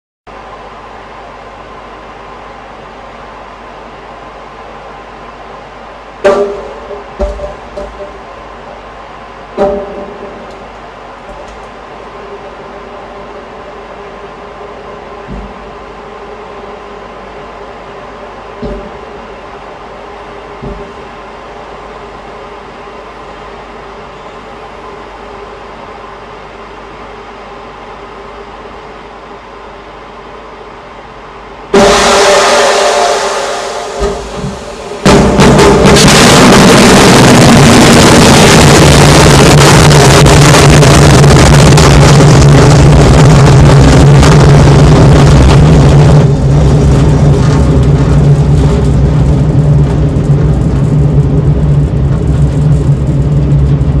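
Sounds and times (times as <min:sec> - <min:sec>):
steady low hum: 0:00.3 - 0:54.0
sudden loud blast: 0:31.7 - 0:54.0
rocket motor roar: 0:31.8 - 0:54.0.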